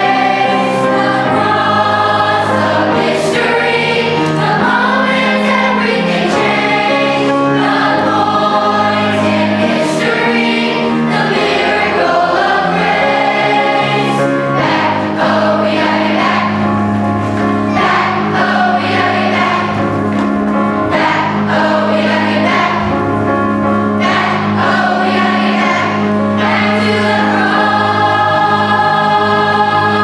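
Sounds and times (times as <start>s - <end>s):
children's choir singing: 0.0s - 30.0s
instrumental accompaniment: 0.0s - 30.0s.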